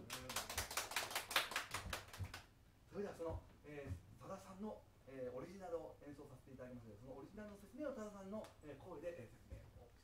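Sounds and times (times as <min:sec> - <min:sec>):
small audience applauding: 0:00.0 - 0:02.5.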